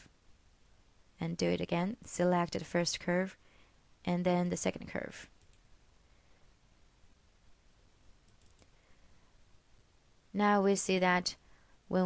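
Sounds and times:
faint computer mouse clicks: 0:08.2 - 0:08.8.

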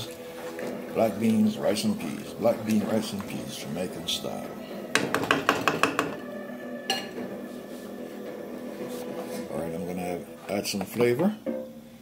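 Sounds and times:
wooden spoon knocking metal pot: 0:04.9 - 0:06.3.

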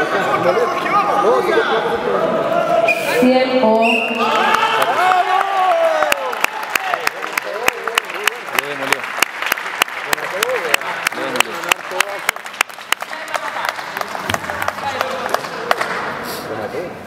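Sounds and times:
rhythmic clapping: 0:06.0 - 0:16.2.

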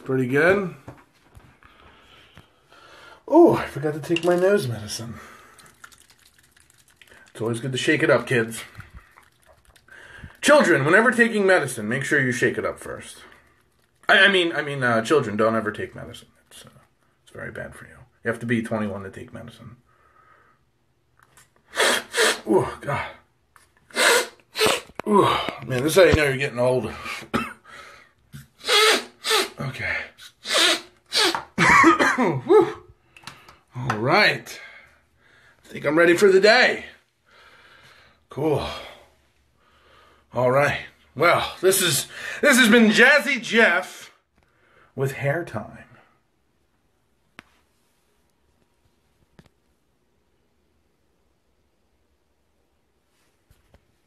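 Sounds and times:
man coughing: 0:27.2 - 0:27.7, 0:31.6 - 0:32.8.

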